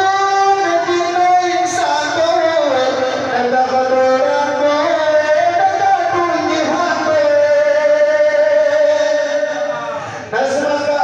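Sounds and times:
man singing through loudspeaker: 0.0 - 11.0.

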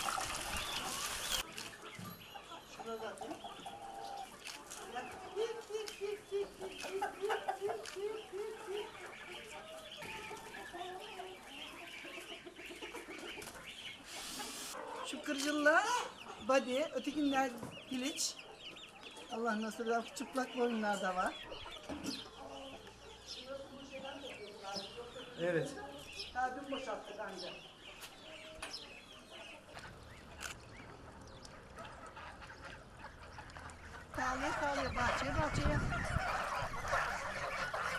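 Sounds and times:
chickens clucking: 0.0 - 37.9.

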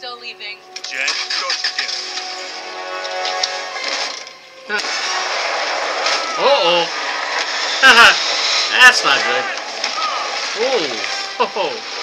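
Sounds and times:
vehicle noise rushing: 4.8 - 11.4.

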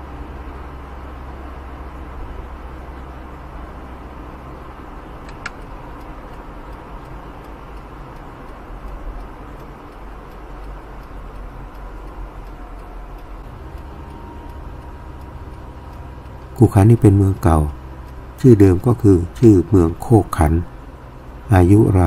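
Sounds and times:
car engine idling: 0.0 - 22.0
faint regular ticking: 0.2 - 22.0.

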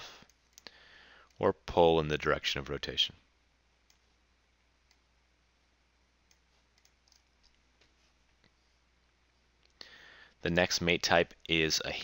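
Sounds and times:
computer mouse clicks: 6.3 - 7.6.

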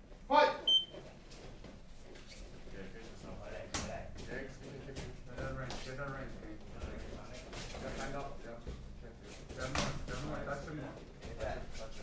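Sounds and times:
high electronic beep: 0.7 - 0.9.

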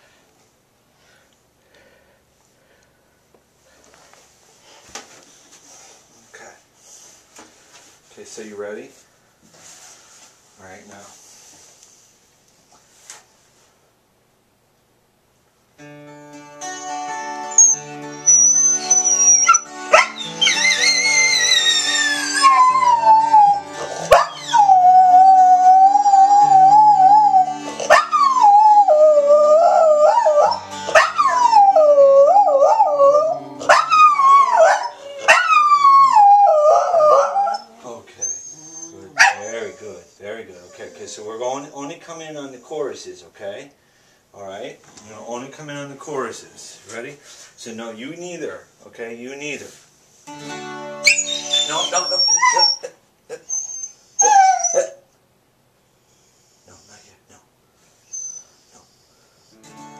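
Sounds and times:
music: 15.8 - 34.5, 50.3 - 52.1, 59.5 - 59.9
dog howling: 17.5 - 41.3, 51.0 - 52.9, 53.5 - 55.0.

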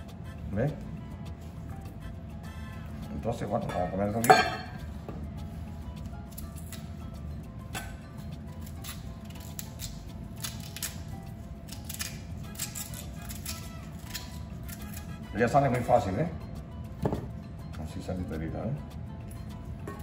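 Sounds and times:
faint background music: 0.0 - 20.0
knife scraping peel: 8.6 - 11.1, 11.7 - 15.2.

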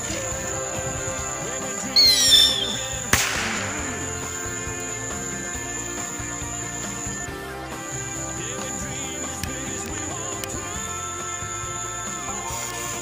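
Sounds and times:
background music: 0.0 - 13.0
firework falling whistle: 2.0 - 4.1
firework bang: 2.0 - 4.2.

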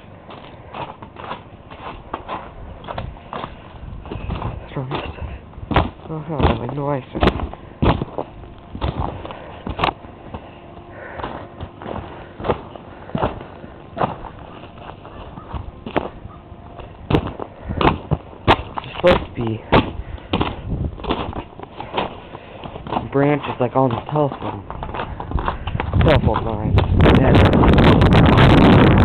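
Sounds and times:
footsteps crunching on icy snow: 0.2 - 28.2.

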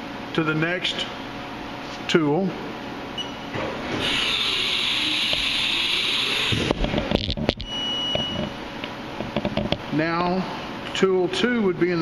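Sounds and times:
tool changer hissing: 3.9 - 6.8.

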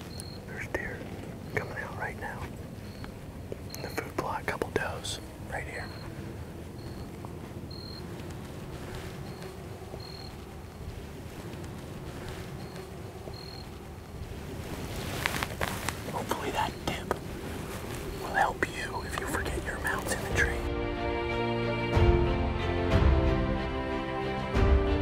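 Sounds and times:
steady low rumble: 0.0 - 21.0
faint whispering: 0.4 - 3.0, 3.8 - 6.4, 15.9 - 20.7
close clicks and rustles: 8.1 - 16.4.

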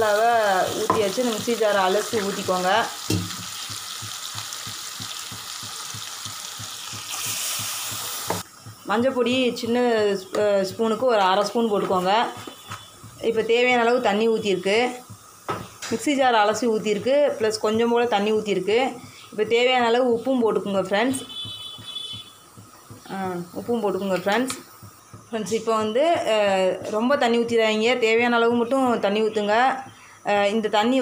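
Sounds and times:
person talking: 23.0 - 24.6.

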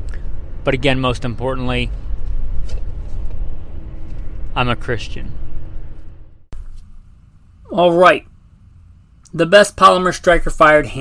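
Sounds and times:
steady low rumble: 0.0 - 9.3.

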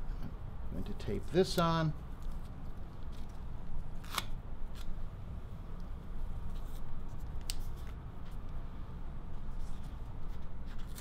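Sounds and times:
low room hum: 0.0 - 11.0
adhesive tape snapping: 4.0 - 5.0.

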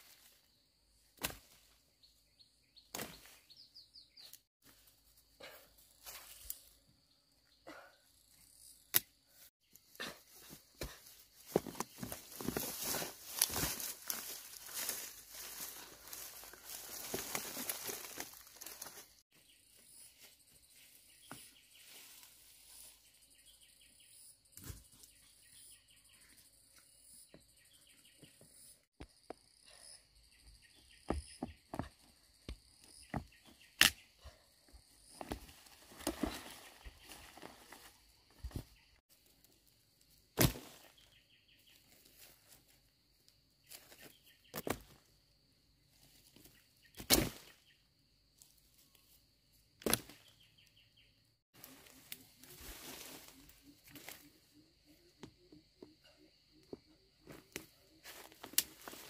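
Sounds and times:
twig snaps: 8.9 - 9.1
rustling leaves and stalks: 9.4 - 19.2, 19.9 - 23.2, 35.1 - 43.0, 51.5 - 54.7, 57.3 - 59.0.

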